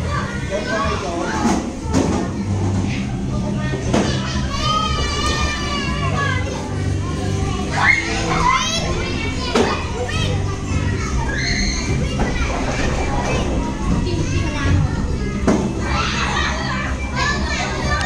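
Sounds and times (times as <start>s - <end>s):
children playing and calling out: 0.0s - 18.0s
children's high-pitched cries: 4.1s - 18.0s.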